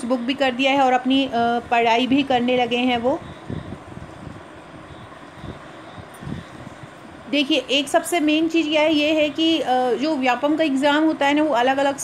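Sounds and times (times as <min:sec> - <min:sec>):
low background rumble and hiss: 0:00.0 - 0:12.0.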